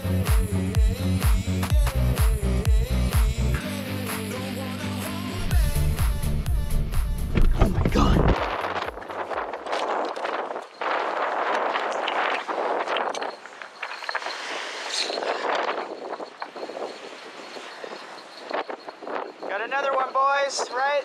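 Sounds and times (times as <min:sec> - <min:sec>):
strong gusting wind: 0:07.4 - 0:21.0
person speaking: 0:19.5 - 0:21.0.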